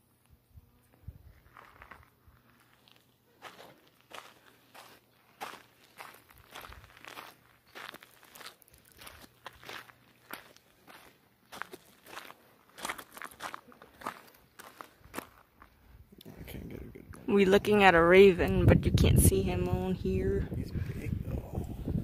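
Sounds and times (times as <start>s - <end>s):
footsteps on loose gravel: 1.2s - 16.0s.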